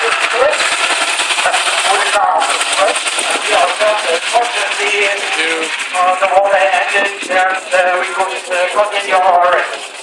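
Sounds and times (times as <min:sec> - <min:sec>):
voices: 0:00.0 - 0:09.8
old car engine chugging: 0:00.0 - 0:10.0
wind buffeting microphone: 0:02.5 - 0:09.4.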